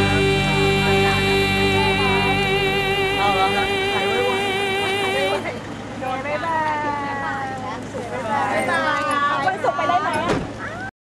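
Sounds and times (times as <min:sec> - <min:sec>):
music with wavering held note: 0:00.0 - 0:05.7
high-pitched gliding cries: 0:00.0 - 0:05.8
low background hum: 0:00.0 - 0:08.2.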